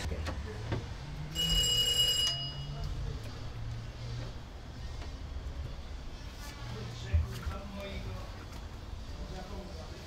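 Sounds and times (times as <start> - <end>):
electronic doorbell ringing: 1.3 - 2.8.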